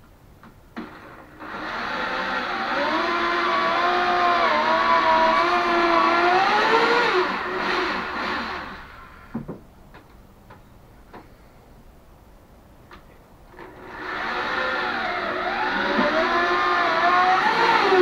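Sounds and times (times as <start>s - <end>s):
electric hand drill running: 0.8s - 9.0s, 13.6s - 18.0s.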